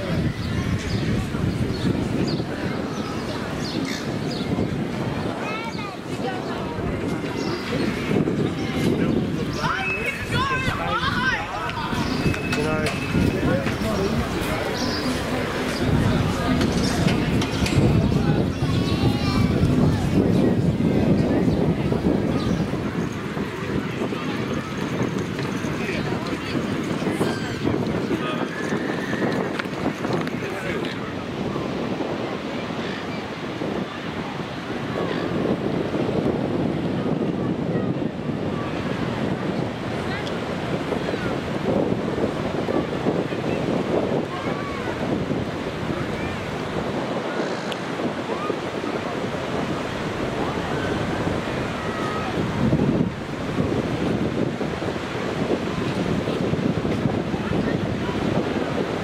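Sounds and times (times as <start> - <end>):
people chattering: 0.0 - 59.0
surf washing onto beach: 0.0 - 59.0
wind on microphone: 0.0 - 59.0.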